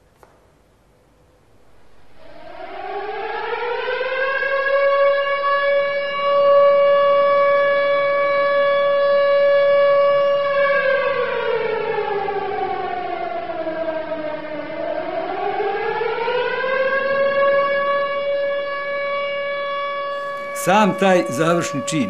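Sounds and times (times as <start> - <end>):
siren steady tone: 1.6 - 22.0.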